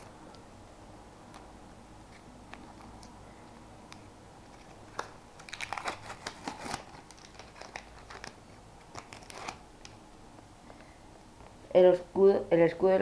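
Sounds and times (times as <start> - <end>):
wrapper tearing and crinkling: 4.5 - 9.6.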